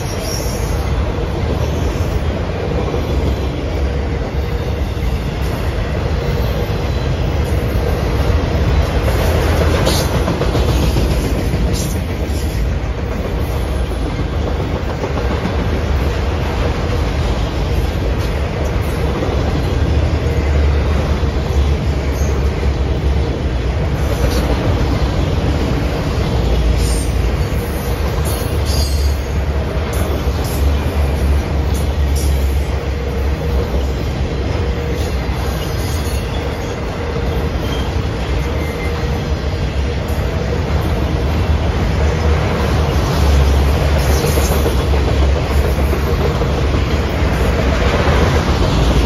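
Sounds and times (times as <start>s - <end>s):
train wheels rumbling on rail: 0.0s - 49.0s
high wheel squeals: 34.8s - 39.3s.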